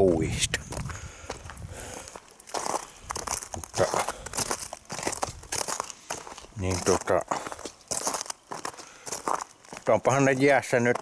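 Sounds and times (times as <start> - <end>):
footsteps crunching on frozen ground: 0.0 - 11.0.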